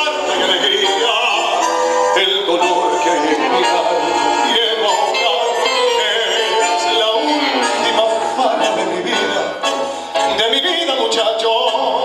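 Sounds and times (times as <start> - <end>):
man singing into a microphone: 0.0 - 12.0
musical accompaniment: 0.0 - 12.0.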